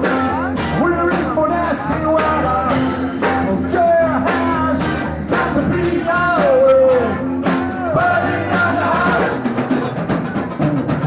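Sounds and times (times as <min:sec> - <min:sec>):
person singing: 0:00.0 - 0:09.6
bass guitar: 0:00.0 - 0:11.0
drum kit: 0:00.0 - 0:11.0
electric guitar: 0:00.0 - 0:11.0.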